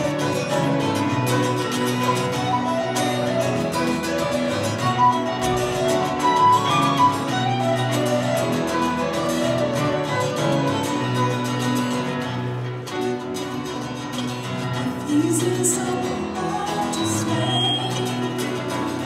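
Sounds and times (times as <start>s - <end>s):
fiddle: 0.0s - 14.6s
folk band playing: 0.0s - 19.0s
woman singing: 14.8s - 19.0s.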